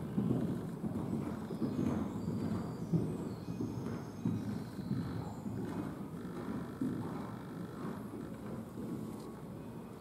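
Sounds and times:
horse hoofbeats on sand: 0.0 - 10.0.

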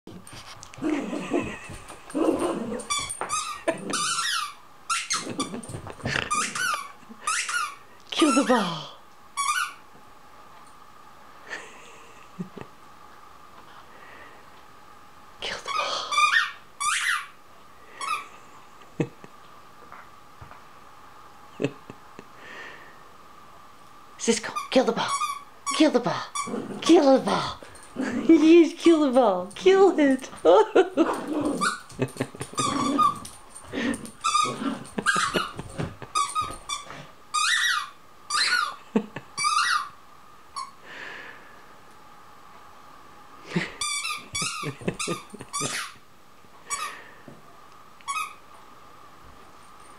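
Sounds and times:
squeaky toy ball squeaking: 2.9 - 5.2, 6.3 - 7.8, 9.4 - 9.8, 16.1 - 17.3, 24.6 - 25.8, 36.2 - 38.8, 39.4 - 39.9, 48.1 - 48.4.

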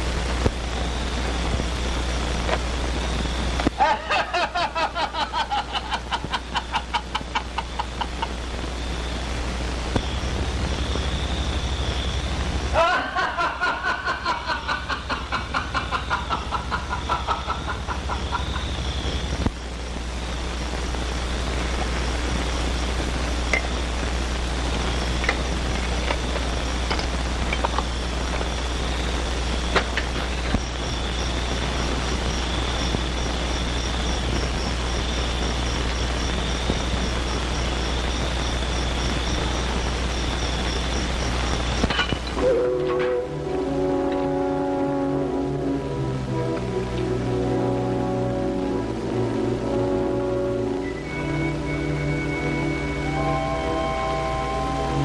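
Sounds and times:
scattered crackles: 0.0 - 44.3
film soundtrack hum and hiss: 0.0 - 55.0
thin steady whistle tone: 9.9 - 12.4, 30.4 - 45.2, 49.6 - 55.0
wavering pulsing pitched sound: 47.2 - 55.0.

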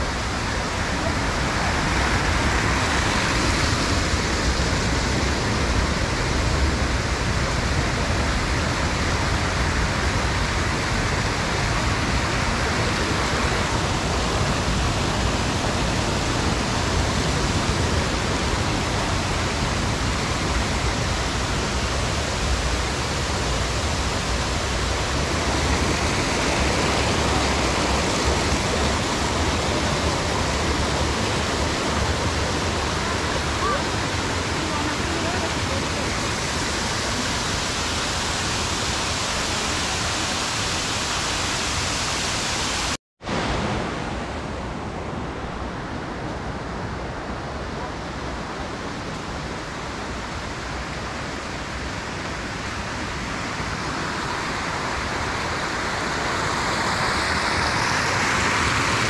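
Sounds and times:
stream rushing over cascades: 0.0 - 59.0.

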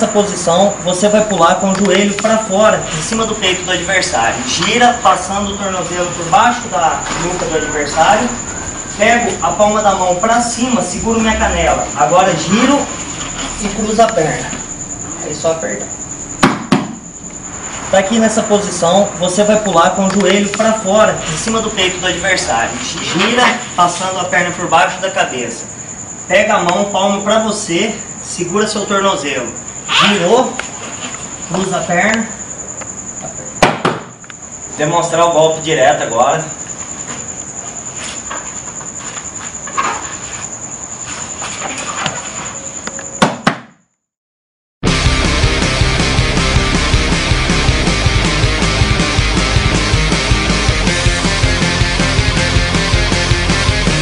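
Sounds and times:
faint high whine: 0.0 - 43.1
hand slaps: 16.4 - 17.0, 33.6 - 34.1.

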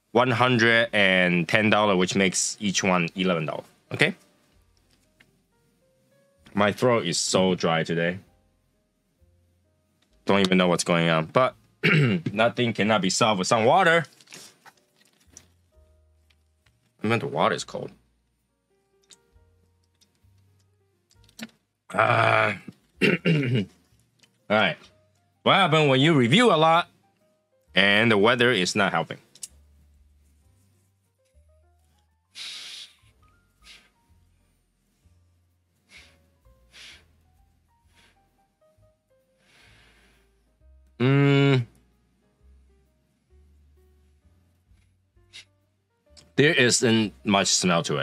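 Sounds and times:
faint background music: 0.0 - 48.0
plastic bottle handling: 14.0 - 15.6
person sniffing: 32.3 - 34.1, 35.8 - 37.2, 37.8 - 38.3, 39.4 - 40.3.

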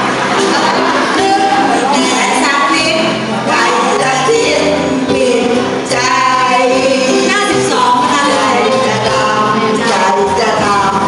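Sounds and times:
women singing through microphones: 0.4 - 11.0.

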